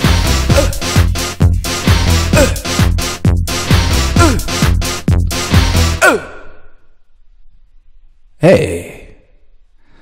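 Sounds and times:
techno music: 0:00.0 - 0:06.0.

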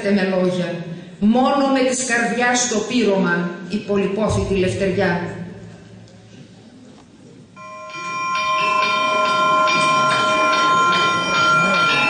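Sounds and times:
church bells ringing: 0:07.6 - 0:12.0.

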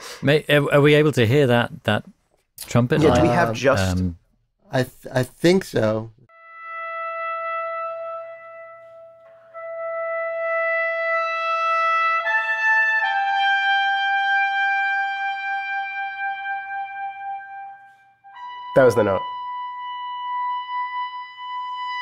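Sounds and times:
trumpet playing high notes: 0:03.0 - 0:03.9, 0:06.3 - 0:22.0.

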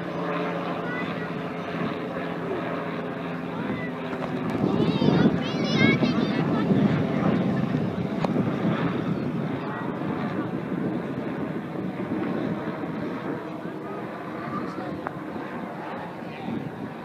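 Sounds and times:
helicopter rotor noise: 0:00.0 - 0:17.0
wind on microphone: 0:03.4 - 0:17.0.

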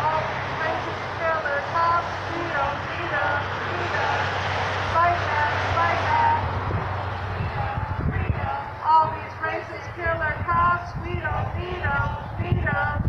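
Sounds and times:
traffic rumble: 0:00.0 - 0:13.0
voice through portable loudspeaker: 0:00.0 - 0:13.0.

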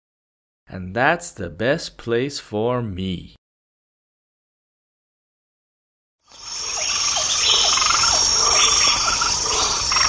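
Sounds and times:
high-pitched insect chirring: 0:06.3 - 0:10.0.

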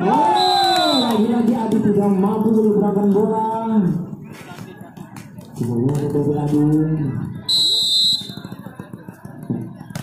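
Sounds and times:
spectator chatter and calls: 0:00.0 - 0:10.0
high whistle blast: 0:00.3 - 0:01.2.

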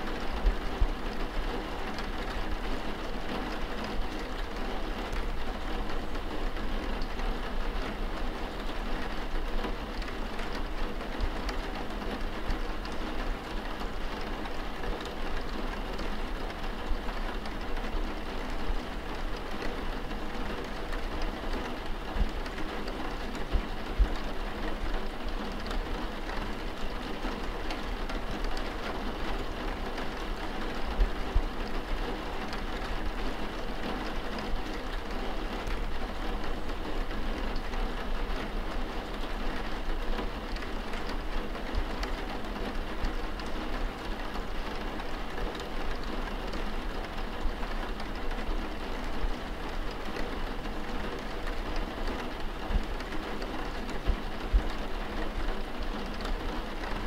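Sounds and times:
steady rain pouring: 0:00.0 - 0:57.0.

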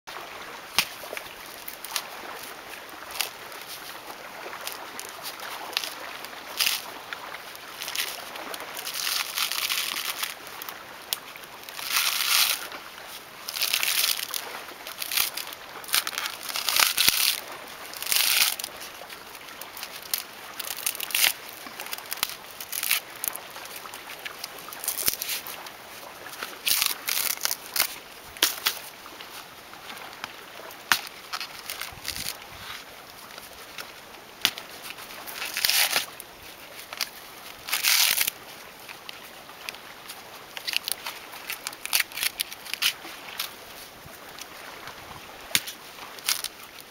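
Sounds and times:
coconut husk tearing: 0:03.1 - 0:07.0, 0:07.7 - 0:10.4, 0:11.7 - 0:12.8, 0:13.4 - 0:25.6, 0:26.4 - 0:28.8, 0:30.8 - 0:32.9, 0:34.4 - 0:36.2, 0:36.8 - 0:38.4, 0:40.6 - 0:43.5, 0:45.5 - 0:46.9.

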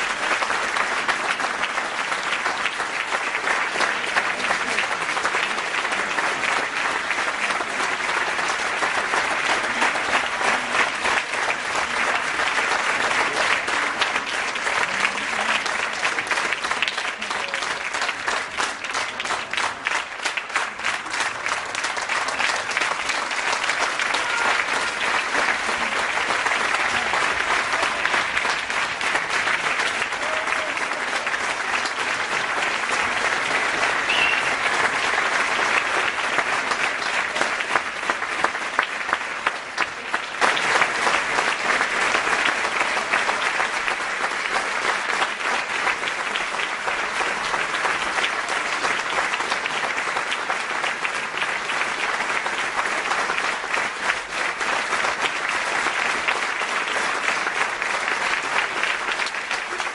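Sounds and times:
crowd applauding: 0:00.0 - 0:59.9.

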